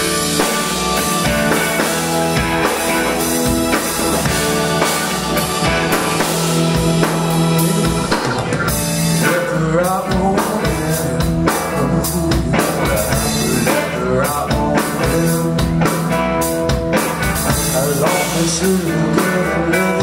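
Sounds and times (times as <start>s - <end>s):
drum kit: 0.0s - 20.0s
electric guitar: 0.0s - 20.0s
keyboard: 0.0s - 20.0s.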